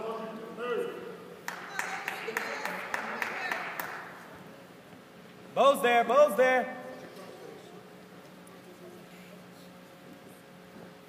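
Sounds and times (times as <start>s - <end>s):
spectators clapping: 1.4s - 4.3s.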